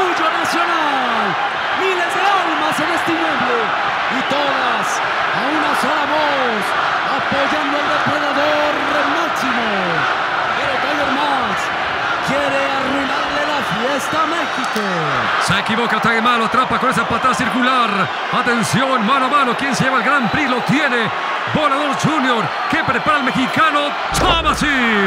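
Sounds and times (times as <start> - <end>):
crowd shouting and chanting: 0.0 - 25.0.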